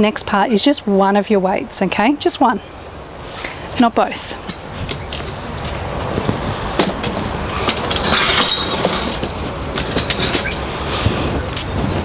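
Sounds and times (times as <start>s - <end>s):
folding chair shifting on brick: 4.5s - 12.0s
chair scraping: 4.7s - 12.0s.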